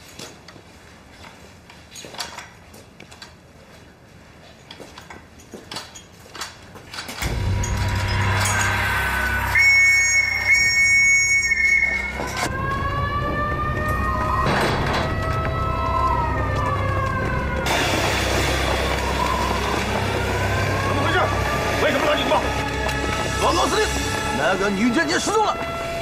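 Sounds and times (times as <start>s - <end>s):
loud background music: 7.2s - 24.5s
alarm siren wailing: 7.2s - 26.0s.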